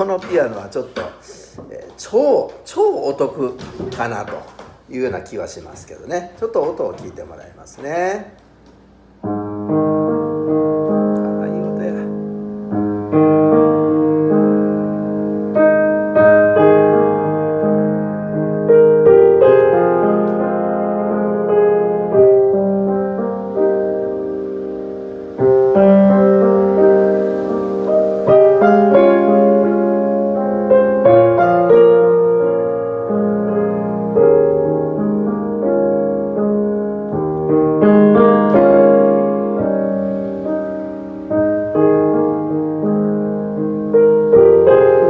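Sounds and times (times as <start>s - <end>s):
piano chords: 0.0s - 45.0s.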